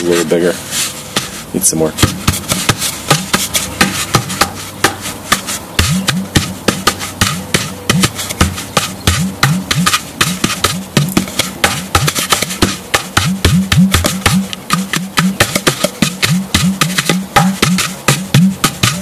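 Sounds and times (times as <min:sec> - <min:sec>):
deep hollow bass tone bending: 0:05.2 - 0:19.0.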